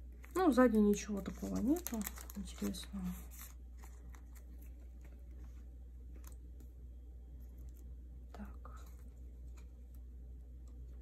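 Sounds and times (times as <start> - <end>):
plastic sleeves rustling: 0.0 - 6.8.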